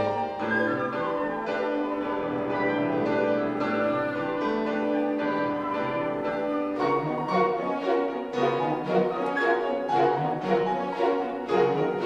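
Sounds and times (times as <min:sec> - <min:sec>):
piano and orchestra playing: 0:00.0 - 0:12.0.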